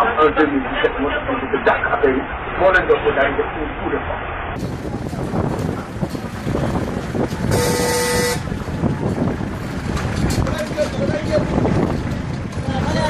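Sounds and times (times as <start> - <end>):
road and wind noise of car: 0.0 - 13.0
car horn blast: 7.5 - 8.5.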